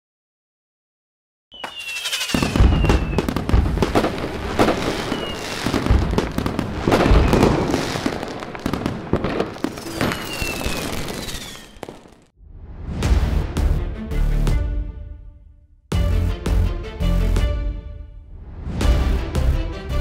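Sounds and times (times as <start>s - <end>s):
rocket whistles falling in pitch: 1.5s - 3.9s, 4.6s - 5.9s, 6.9s - 7.9s, 9.7s - 12.2s
fireworks bangs and booms: 1.6s - 12.3s
fireworks crackling: 1.6s - 12.3s.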